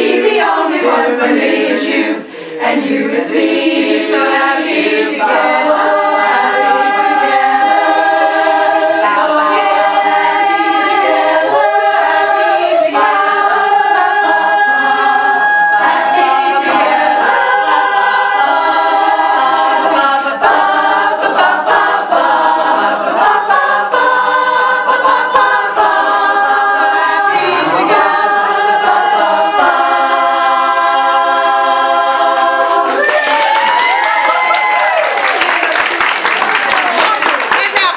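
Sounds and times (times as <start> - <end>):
women's chorus singing a cappella: 0.0 - 34.8
crowd cheering: 32.6 - 37.9
applause: 32.9 - 37.9.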